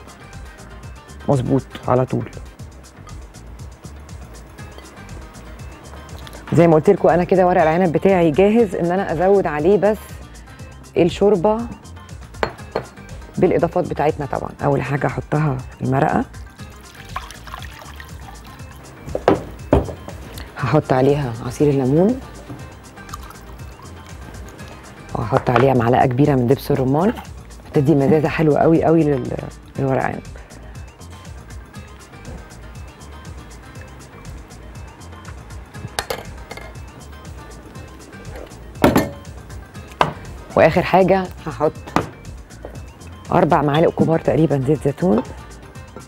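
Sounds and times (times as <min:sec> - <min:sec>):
background music: 0:00.0 - 0:46.0
broth pouring into a jug: 0:16.8 - 0:18.6.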